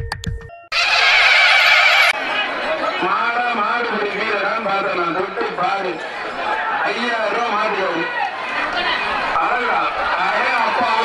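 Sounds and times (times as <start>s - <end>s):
horse whinny: 0.7s - 2.2s.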